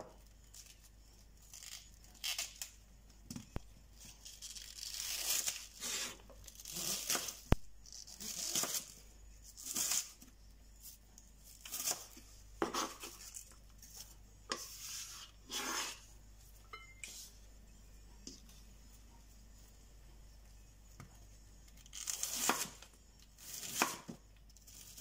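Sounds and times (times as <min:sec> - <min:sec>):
knife slicing onion: 0:04.2 - 0:16.1, 0:21.8 - 0:25.0.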